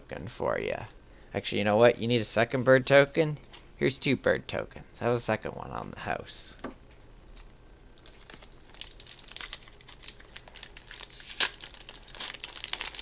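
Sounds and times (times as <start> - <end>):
foil wrapper crinkling: 7.4 - 13.0.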